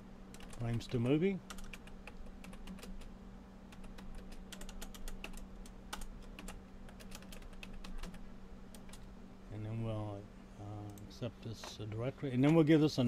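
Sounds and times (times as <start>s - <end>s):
steady low hum: 0.0s - 13.0s
typing on computer keyboard: 0.4s - 3.1s, 3.7s - 8.2s.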